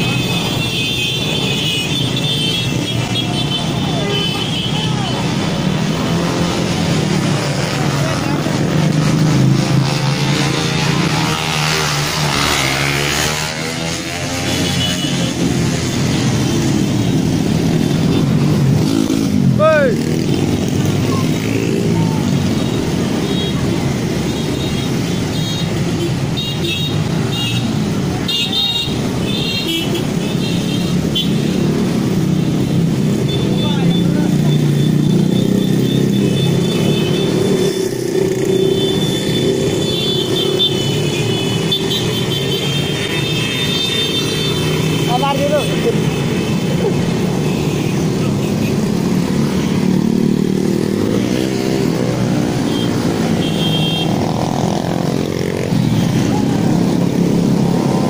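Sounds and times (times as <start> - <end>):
motorcycles and scooters passing: 0.0 - 58.0
people's voices: 2.8 - 11.0, 18.8 - 22.5, 33.3 - 34.9.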